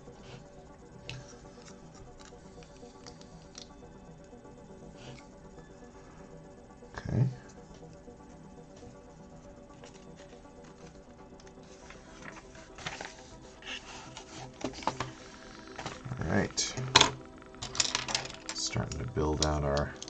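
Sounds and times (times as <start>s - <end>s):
plastic lego pieces clattering: 16.9s - 18.6s.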